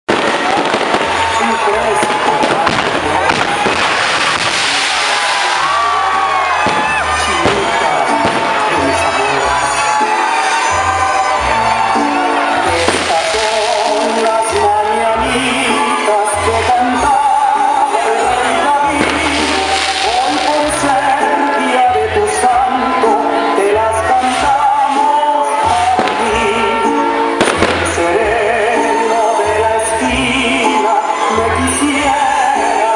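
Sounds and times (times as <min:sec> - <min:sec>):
fireworks crackling and hissing: 0:00.1 - 0:09.9, 0:12.6 - 0:14.8, 0:18.9 - 0:21.0, 0:27.4 - 0:28.0
firework whistling glides: 0:00.1 - 0:10.0, 0:19.0 - 0:20.7
band playing music: 0:00.1 - 0:32.9
crowd voices: 0:00.1 - 0:32.9.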